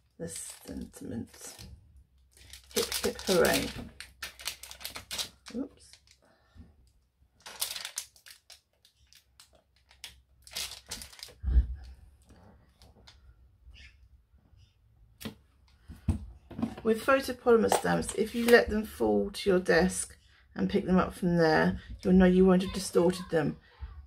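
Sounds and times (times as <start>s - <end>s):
thin plastic crinkling: 0.2s - 6.2s, 6.8s - 13.2s.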